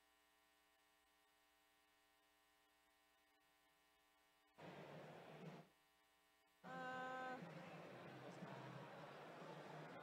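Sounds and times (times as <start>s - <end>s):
faint arena background noise: 4.5s - 10.0s.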